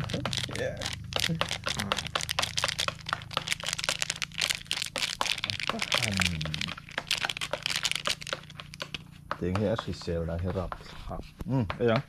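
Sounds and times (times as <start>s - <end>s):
chocolate breaking: 0.0s - 9.0s
plastic wrapper crinkling: 0.0s - 9.0s.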